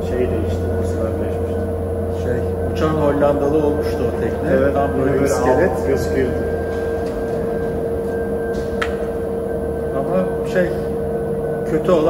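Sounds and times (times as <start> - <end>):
machine hum with steady tone: 0.0 - 12.0.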